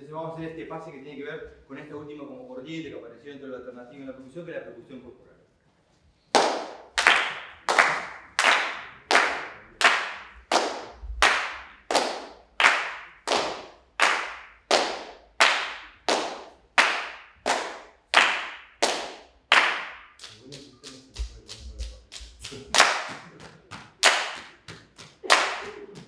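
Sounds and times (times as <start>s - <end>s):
group clapping in unison: 6.3s - 26.0s.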